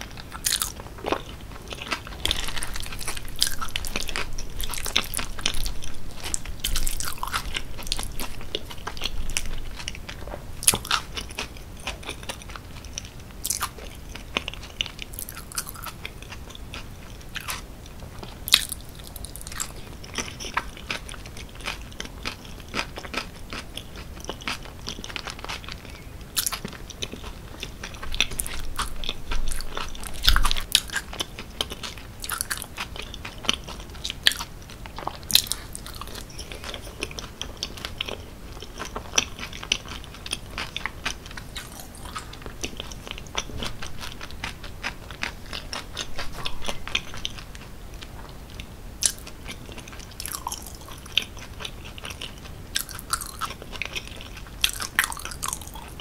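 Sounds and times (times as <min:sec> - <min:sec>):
chewing mouth clicks and smacks: 0:00.3 - 0:16.8, 0:18.5 - 0:47.7, 0:48.6 - 0:56.0.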